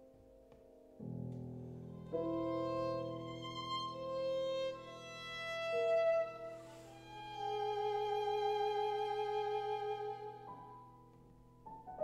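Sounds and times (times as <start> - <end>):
violin playing long notes: 2.0 - 10.7.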